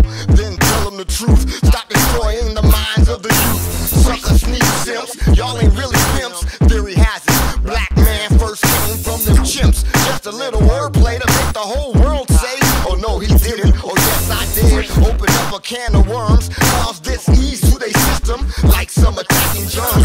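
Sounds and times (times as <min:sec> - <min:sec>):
hip hop beat with deep bass: 0:00.0 - 0:20.0
pitch-gliding voice: 0:03.3 - 0:06.4.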